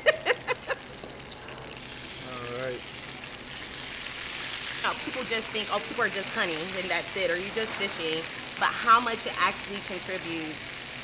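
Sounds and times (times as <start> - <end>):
food sizzling in a skillet: 0.0 - 11.0.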